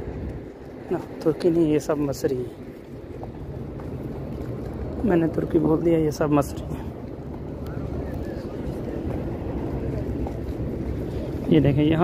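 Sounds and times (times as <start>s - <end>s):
distant voices: 0.0s - 12.0s
low outdoor rumble: 0.0s - 12.0s.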